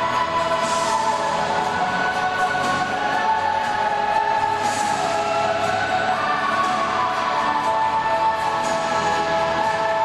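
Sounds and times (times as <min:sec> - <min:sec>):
choir singing long held notes: 0:00.0 - 0:10.0.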